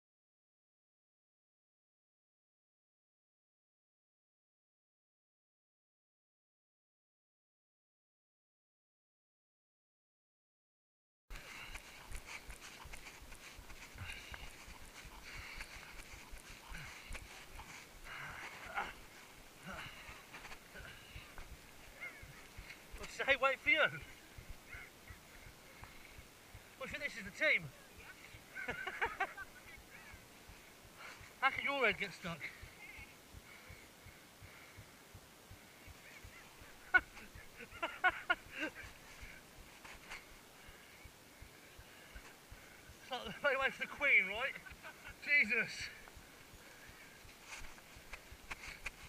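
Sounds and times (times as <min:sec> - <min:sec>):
heavy breathing: 0:11.3 - 0:23.0, 0:24.0 - 0:26.8, 0:30.1 - 0:31.4, 0:32.4 - 0:37.6, 0:38.4 - 0:43.0, 0:45.8 - 0:49.0
footsteps running on grass: 0:11.3 - 0:25.3, 0:45.7 - 0:49.0.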